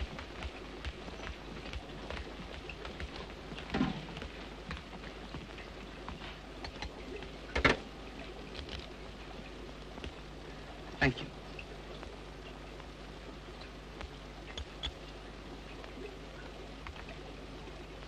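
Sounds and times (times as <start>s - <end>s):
film soundtrack hiss and crackle: 0.0s - 18.0s.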